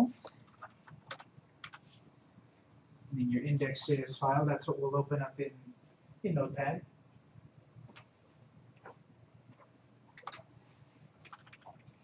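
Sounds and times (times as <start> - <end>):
keyboard and mouse clicking: 0.2 - 1.8, 7.5 - 10.6, 11.2 - 12.0.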